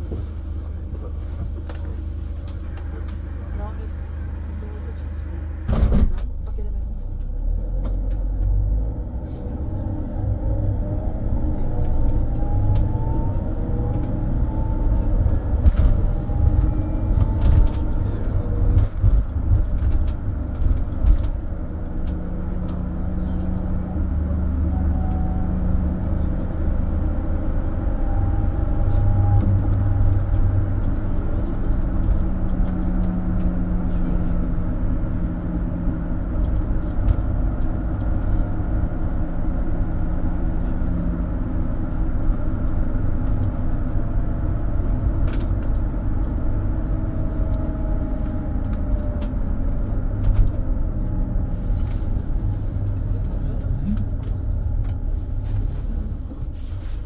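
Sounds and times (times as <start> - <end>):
diesel engine rumble: 0.0 - 57.0
road noise: 0.0 - 57.0.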